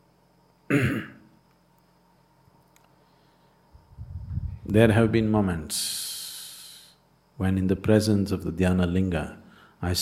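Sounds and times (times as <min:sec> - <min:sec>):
man clearing his throat: 0:00.7 - 0:01.3.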